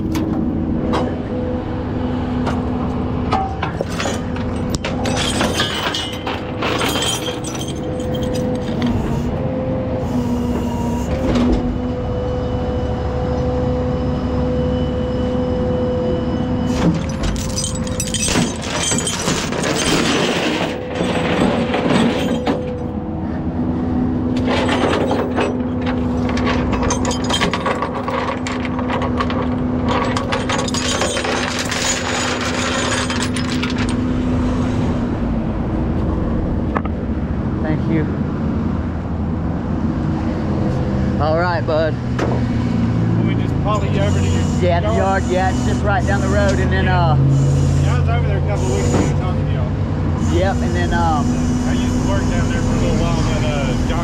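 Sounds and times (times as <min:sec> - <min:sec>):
tow truck engine humming: 0:00.0 - 0:19.7, 0:20.3 - 0:54.0
chains clanking on steel deck: 0:03.4 - 0:08.8, 0:17.0 - 0:22.9, 0:24.4 - 0:34.0.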